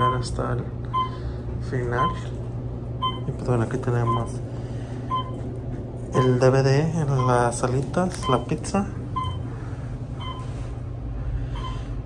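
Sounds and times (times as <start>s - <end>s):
elevator chime beeping: 0.0s - 1.2s, 1.9s - 2.3s, 3.0s - 3.4s, 4.0s - 4.4s, 5.1s - 5.4s, 6.2s - 9.5s, 10.2s - 10.6s, 11.5s - 11.9s
elevator humming: 0.0s - 12.0s.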